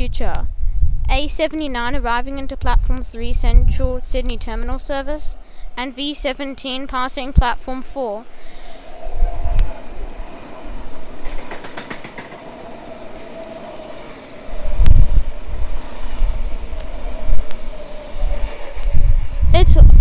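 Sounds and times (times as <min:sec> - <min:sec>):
train whine and rumble: 0:00.0 - 0:20.0
wheels clicking over rail joints: 0:06.1 - 0:19.7.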